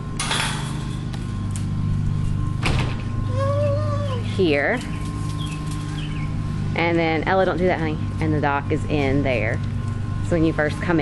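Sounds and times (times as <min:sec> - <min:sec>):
metal gate scraping rattle: 0:00.2 - 0:01.5.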